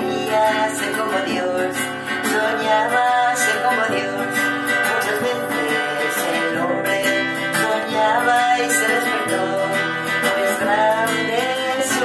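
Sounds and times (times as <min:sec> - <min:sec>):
acoustic guitar strumming: 0:00.0 - 0:12.0
woman singing: 0:00.0 - 0:12.0.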